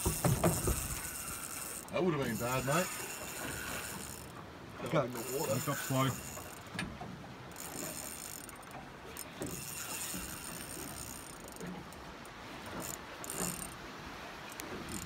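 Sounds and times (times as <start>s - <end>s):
fishing reel gears whirring: 0.0s - 13.8s, 14.4s - 15.0s.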